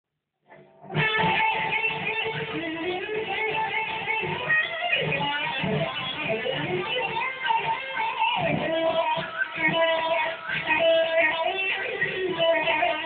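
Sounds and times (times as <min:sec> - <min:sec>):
electric guitar lead solo: 0:00.5 - 0:13.0.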